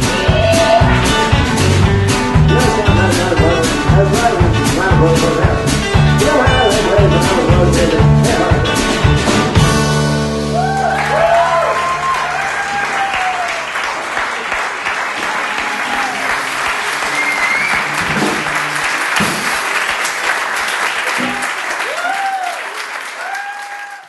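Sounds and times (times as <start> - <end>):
people cheering: 0.0 - 1.7, 10.4 - 24.0
small audience applauding: 0.2 - 1.4, 10.5 - 24.0.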